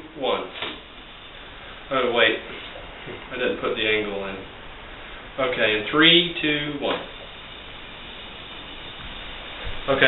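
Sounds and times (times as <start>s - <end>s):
air hissing from balloon: 0.5s - 10.0s.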